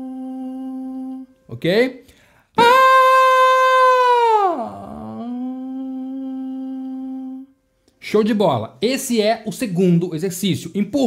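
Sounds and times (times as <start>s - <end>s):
man singing vocal exercise: 0.0s - 1.3s, 4.0s - 7.5s.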